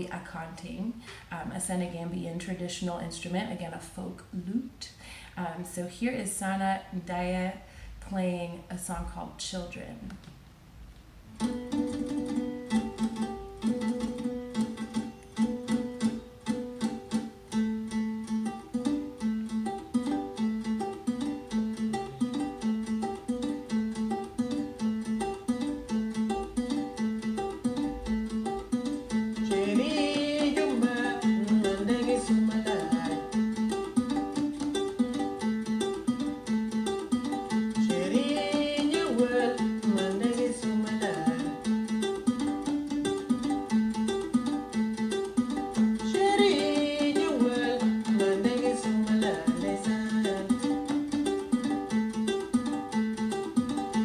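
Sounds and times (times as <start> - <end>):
plucked lute notes: 11.2 - 54.0
person singing: 29.1 - 34.3, 37.4 - 42.6, 45.7 - 52.0.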